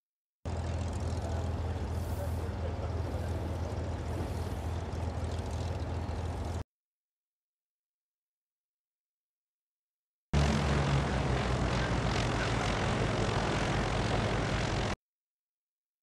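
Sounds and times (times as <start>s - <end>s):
steady low rumble: 0.5s - 6.6s, 10.4s - 15.0s
people talking: 1.1s - 4.6s.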